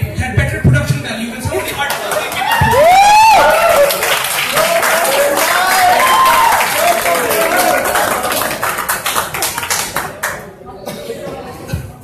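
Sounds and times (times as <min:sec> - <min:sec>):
audience applauding: 0:01.6 - 0:10.4.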